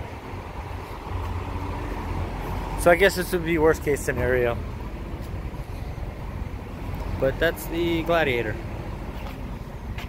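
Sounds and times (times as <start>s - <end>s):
vehicle engine rumble: 0.0s - 10.0s
man speaking: 7.2s - 8.6s.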